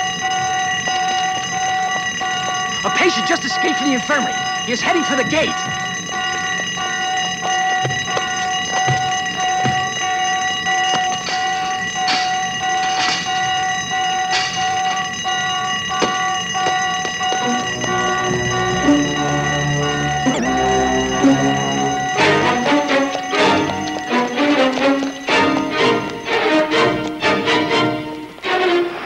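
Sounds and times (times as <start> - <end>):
alarm bell ringing: 0.0 - 28.5
film score music: 17.4 - 29.0.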